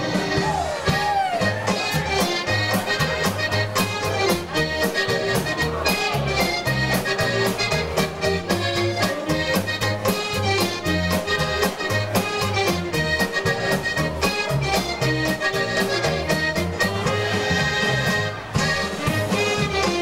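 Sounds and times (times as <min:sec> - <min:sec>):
accordion: 0:00.0 - 0:20.0
polka band playing: 0:00.0 - 0:20.0.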